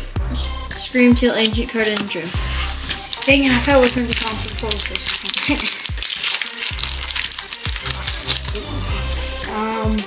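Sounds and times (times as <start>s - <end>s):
background music with bass line: 0.0s - 10.0s
foil pack crinkling torn open: 1.8s - 8.7s.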